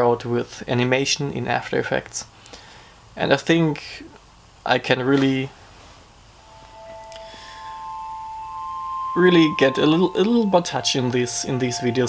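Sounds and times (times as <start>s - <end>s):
faint high sparkle: 6.4s - 12.0s
shimmering chime-like tones: 6.4s - 12.0s.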